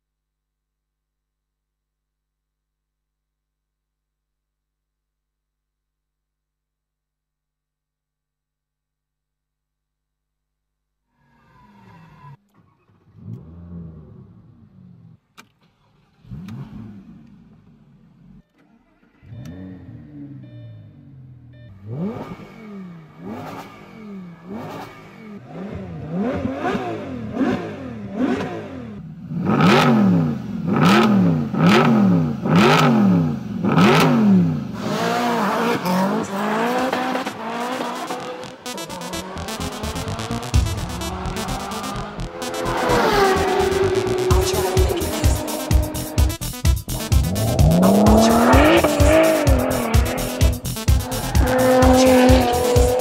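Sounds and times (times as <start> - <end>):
car engine revving: 12.9 - 53.0
electronic music: 35.4 - 53.0
sharp electronic hits: 37.0 - 53.0.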